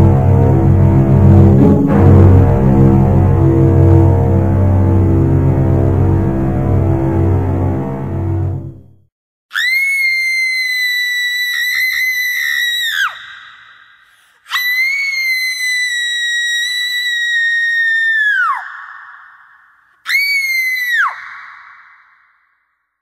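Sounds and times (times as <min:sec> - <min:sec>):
high-pitched cartoon screams: 0:09.5 - 0:13.8, 0:14.5 - 0:22.2.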